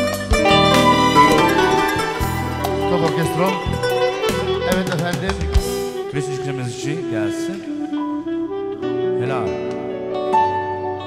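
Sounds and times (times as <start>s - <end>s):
drums: 0.0s - 6.1s
saxophone melody: 0.3s - 6.1s, 7.7s - 9.2s.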